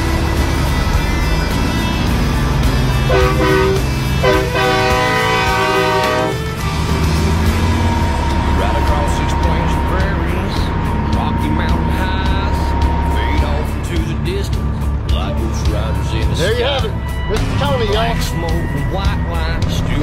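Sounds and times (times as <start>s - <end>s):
diesel engine drone: 0.0s - 20.0s
road noise: 0.0s - 20.0s
truck air horn blasts: 3.0s - 6.6s.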